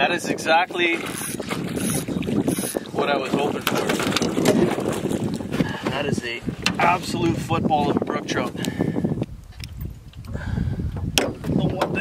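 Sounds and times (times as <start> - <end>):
wind noise on microphone: 0.0 - 12.0
landing net knocking on boat: 3.6 - 5.1, 11.0 - 12.0.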